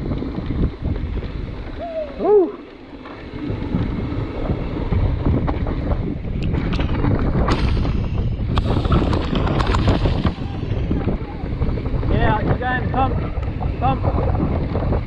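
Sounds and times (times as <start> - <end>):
bike clicks and rattles: 0.0 - 1.8, 2.5 - 15.0
tyres rolling over dirt: 0.0 - 15.0
wind buffeting microphone: 0.0 - 15.0.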